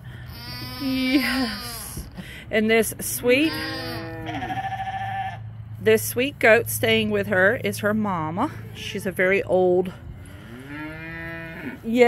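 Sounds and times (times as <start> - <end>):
goat bleating: 3.4 - 5.5.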